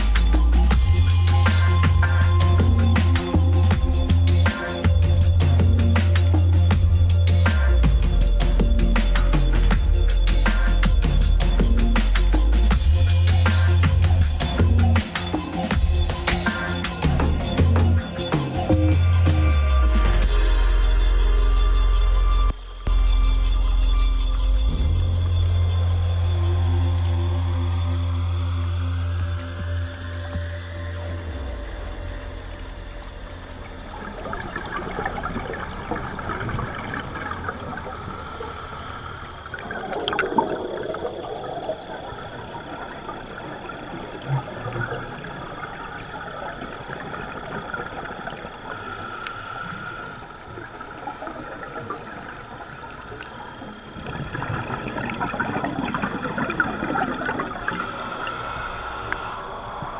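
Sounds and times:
music: 0.0 - 36.6
underwater air bubbles: 26.2 - 59.9.

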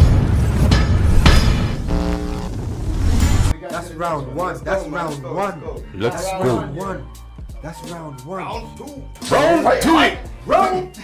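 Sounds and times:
sharp hit: 0.0 - 3.5
short buzzing tone: 1.8 - 2.5.

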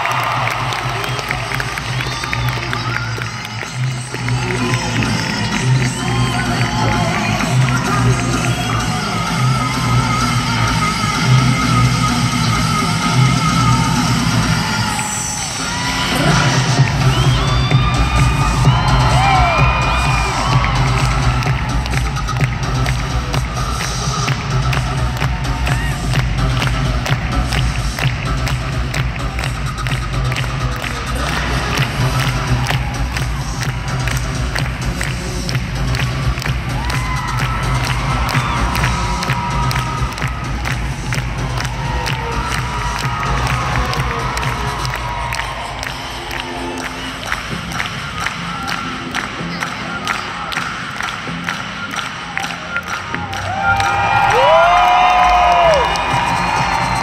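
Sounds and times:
audience cheering and clapping: 0.0 - 57.0
music over a sound system: 0.0 - 57.0.

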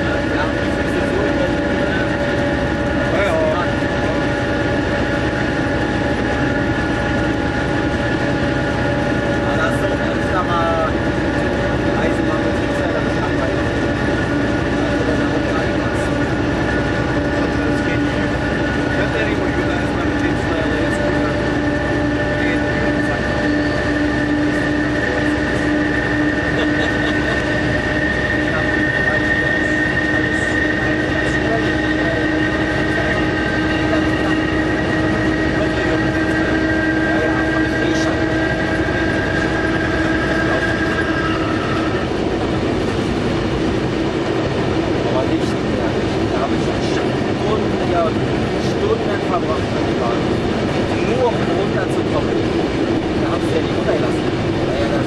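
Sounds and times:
diesel locomotive engine running: 0.0 - 55.0
wheels rumbling on rails: 0.0 - 55.0
whining tones: 0.0 - 55.0.

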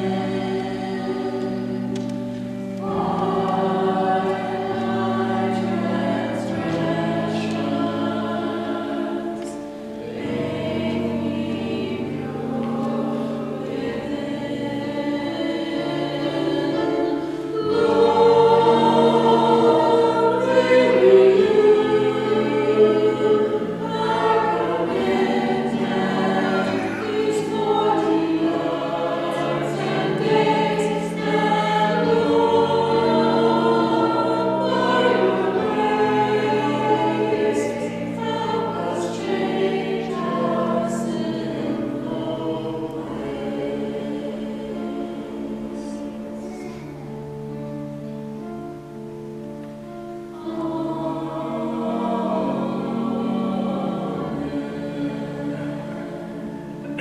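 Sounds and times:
group singing a hymn: 0.0 - 57.0.

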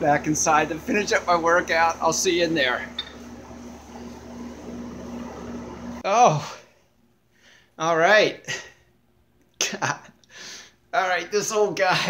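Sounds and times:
machine hum: 0.0 - 6.0.

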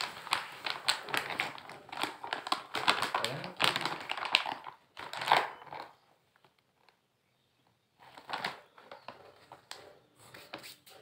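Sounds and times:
plastic bag crinkling: 0.0 - 7.0, 8.0 - 11.0.

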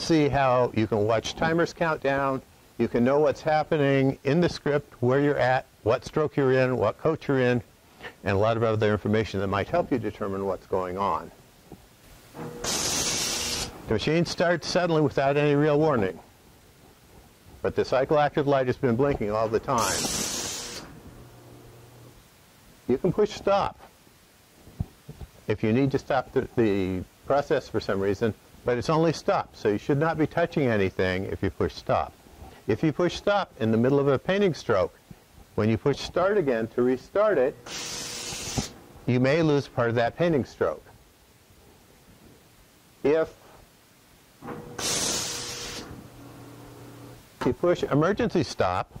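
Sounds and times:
faint low machine hum: 0.0 - 49.0
compressed air hiss: 12.5 - 13.8, 19.8 - 21.0, 37.6 - 38.8, 44.7 - 46.0.

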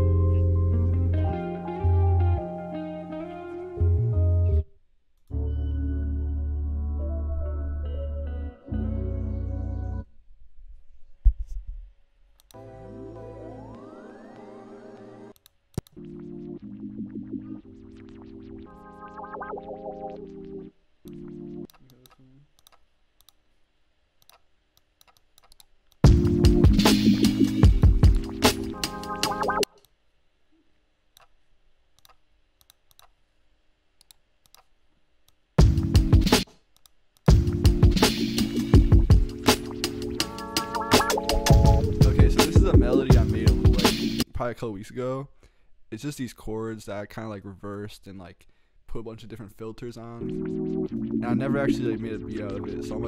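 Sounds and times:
synth chords over deep bass: 0.0 - 2.6, 5.4 - 10.0, 12.6 - 15.3, 26.1 - 29.6, 41.4 - 44.2
faint clicks: 15.3 - 16.0, 21.0 - 23.4, 24.2 - 26.1, 32.0 - 33.2
drum loop: 26.0 - 29.7, 35.6 - 36.6, 37.2 - 44.2.

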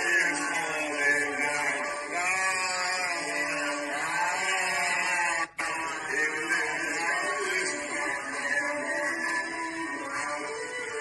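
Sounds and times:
men singing together: 0.0 - 10.8.

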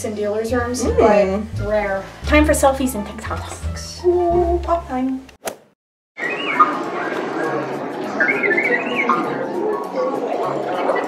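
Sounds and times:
electronic robot chirps: 6.2 - 7.5, 8.1 - 9.6
crowd chatter: 6.3 - 11.0.

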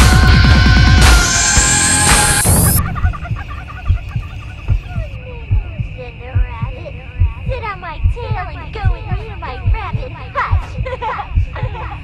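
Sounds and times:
birds chirping: 2.3 - 5.2
heartbeat double thump: 2.4 - 12.0.

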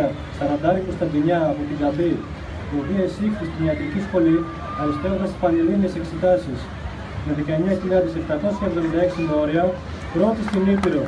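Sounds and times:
man speaking into microphone: 0.0 - 11.0.

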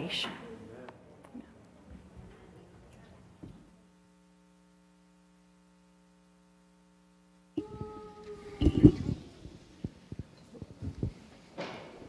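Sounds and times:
soft low thumps: 7.6 - 11.3.

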